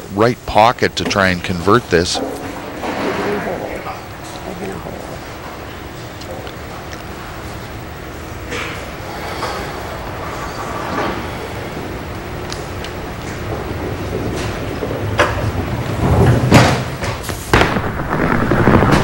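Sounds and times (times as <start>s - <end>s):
bowling ball rolling on lane: 1.0s - 19.0s.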